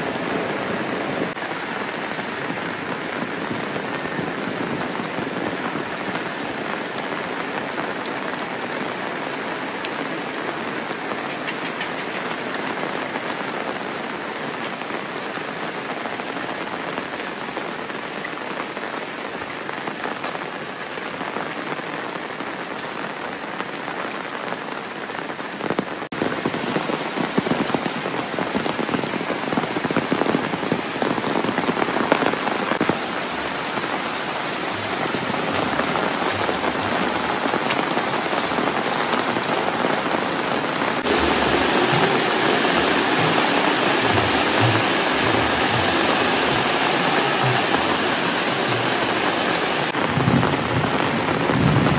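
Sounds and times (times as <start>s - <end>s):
close raindrops: 0.0s - 51.9s
steady rain falling: 0.0s - 51.9s.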